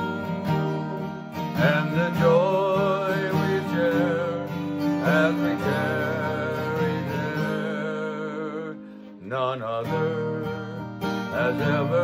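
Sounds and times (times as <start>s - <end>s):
acoustic guitar: 0.0s - 12.0s
man singing a hymn: 0.0s - 12.0s.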